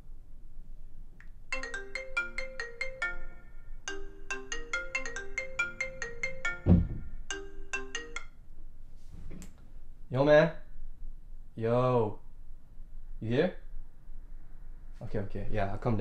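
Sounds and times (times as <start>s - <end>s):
marimba-like phone ringtone: 1.5s - 8.4s
low thump: 6.6s - 7.2s.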